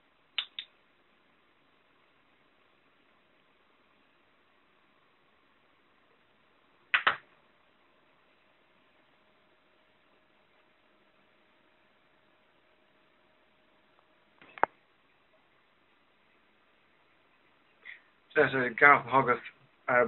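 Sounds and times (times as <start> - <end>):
faint steady hum: 0.0 - 20.0
sharp clicks: 0.4 - 0.7, 6.9 - 7.2.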